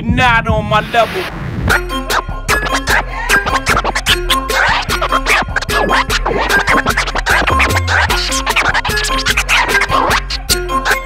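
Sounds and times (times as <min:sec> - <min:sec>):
hip-hop drum beat: 0:00.0 - 0:11.0
vinyl scratching: 0:00.0 - 0:11.0.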